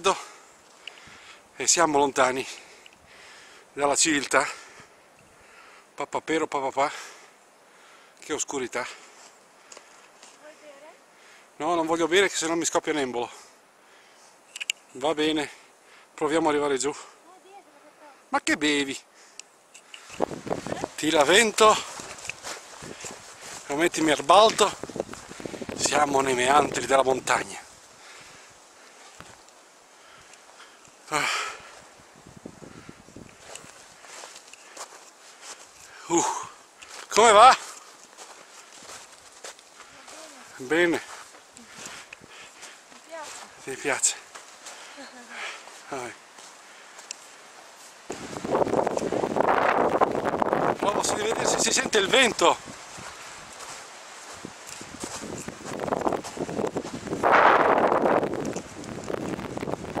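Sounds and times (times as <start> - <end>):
rustling: 19.3 - 31.1
footsteps in snow: 19.9 - 29.7, 30.3 - 60.0.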